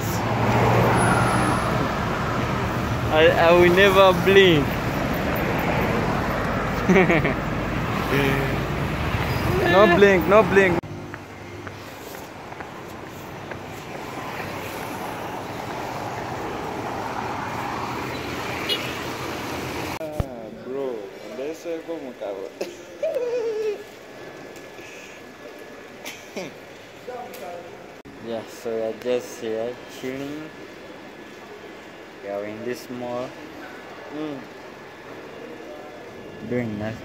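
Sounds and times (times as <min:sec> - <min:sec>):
steady rushing outdoor noise: 0:00.0 - 0:20.0
road noise: 0:00.0 - 0:37.0.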